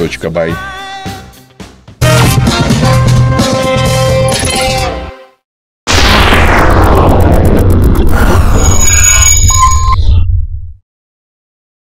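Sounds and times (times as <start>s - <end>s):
low electronic rumble: 5.9s - 10.8s.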